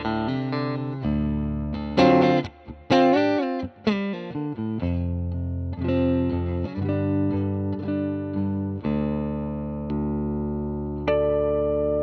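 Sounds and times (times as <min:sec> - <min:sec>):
electric guitar ringing chords: 0:00.0 - 0:12.0.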